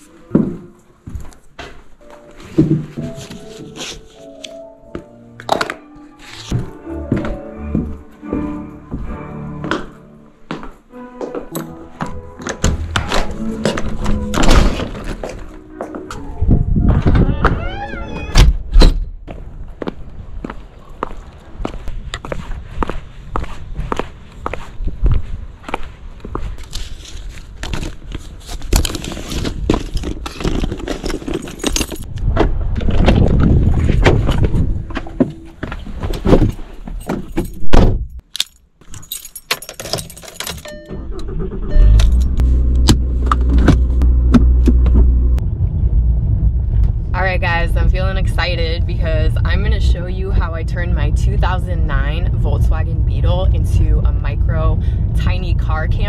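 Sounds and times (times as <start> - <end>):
footsteps: 0.0 - 17.6, 19.2 - 32.0, 32.6 - 37.7
keys jangling: 31.0 - 32.1, 37.0 - 40.7
car engine idling: 41.2 - 56.0.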